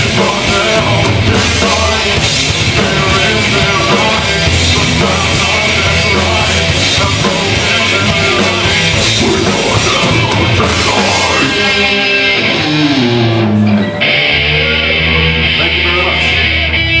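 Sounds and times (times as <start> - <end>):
drums and cymbals: 0.0 - 13.6
distorted electric guitars: 0.0 - 17.0
heavy metal band playing live: 0.0 - 17.0.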